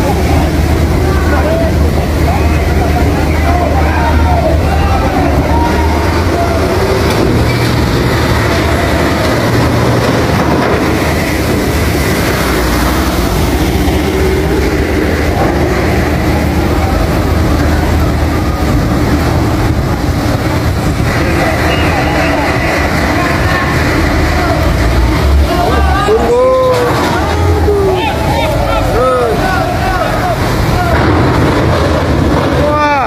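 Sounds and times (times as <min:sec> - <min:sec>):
stormy wind rushing: 0:00.0 - 0:28.9
ferry engine rumble: 0:00.0 - 0:33.0
people's voices: 0:00.0 - 0:33.0.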